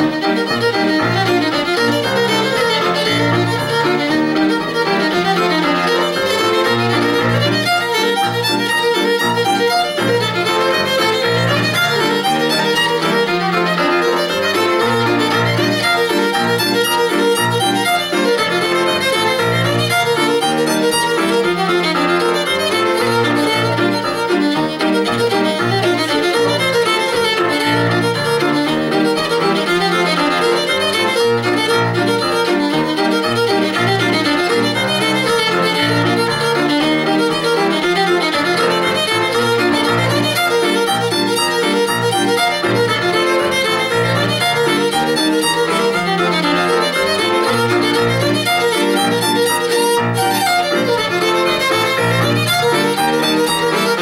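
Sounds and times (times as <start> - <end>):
digital piano chords: 0.0 - 54.0
fiddle melody: 0.0 - 54.0.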